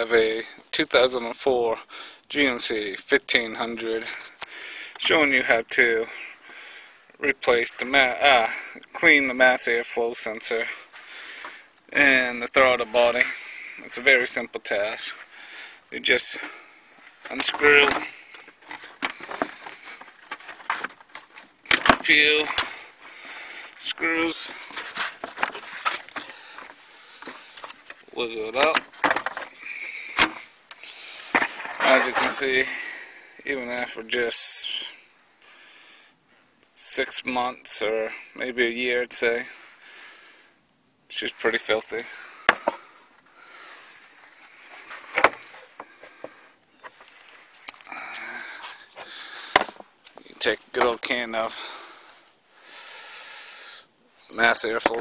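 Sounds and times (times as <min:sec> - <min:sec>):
low steady hiss: 0:00.0 - 0:55.0.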